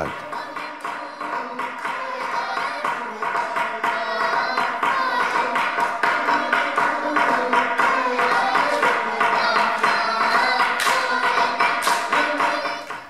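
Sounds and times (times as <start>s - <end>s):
group chanting: 0.0s - 13.0s
quick steady clapping: 0.0s - 13.0s.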